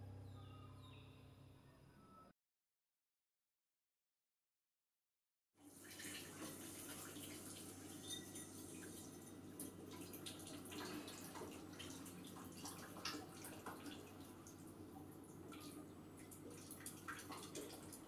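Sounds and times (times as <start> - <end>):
water running into sink: 5.6 - 18.0
dishes splashing and knocking: 7.9 - 11.6.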